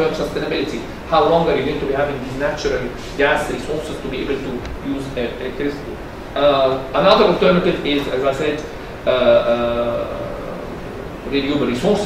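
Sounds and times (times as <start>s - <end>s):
man saying uhhh: 9.1s - 10.8s.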